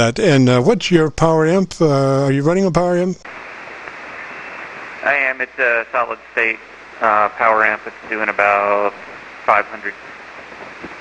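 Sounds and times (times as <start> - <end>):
radio receiver hiss: 1.8 - 11.0.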